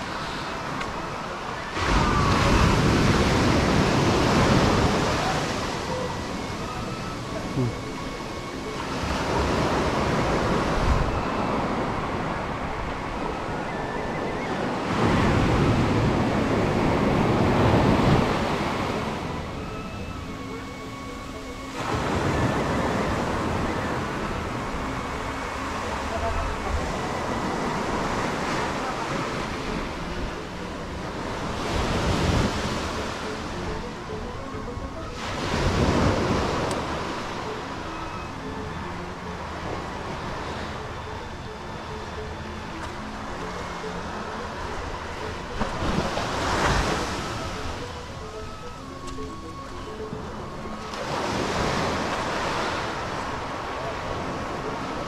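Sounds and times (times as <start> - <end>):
surf breaking on a beach: 0.0 - 20.5.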